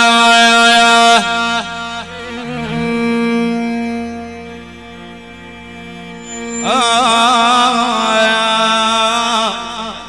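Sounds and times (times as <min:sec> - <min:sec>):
electronic keyboard reedy note: 0:02.1 - 0:08.5.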